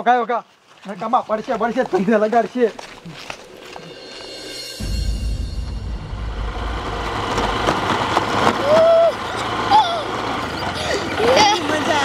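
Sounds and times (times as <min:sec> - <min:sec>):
motorcycle engine rumble: 0:03.0 - 0:12.0.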